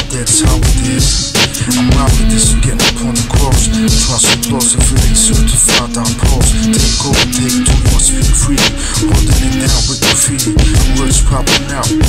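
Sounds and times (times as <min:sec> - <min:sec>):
hip hop drum beat: 0:00.0 - 0:12.0
man rapping: 0:00.0 - 0:12.0.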